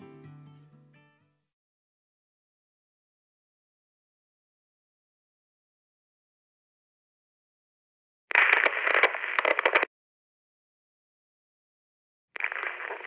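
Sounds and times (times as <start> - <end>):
radio static crackle: 8.3 - 9.9, 12.4 - 13.0.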